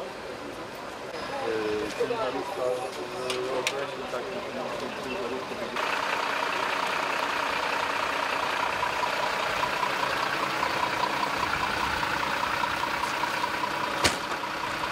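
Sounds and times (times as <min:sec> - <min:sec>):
diesel engine idling: 0:03.9 - 0:14.9.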